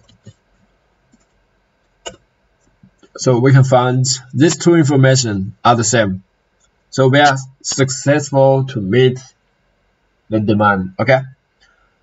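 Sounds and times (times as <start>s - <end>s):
faint keyboard keystrokes: 0.0s - 0.4s.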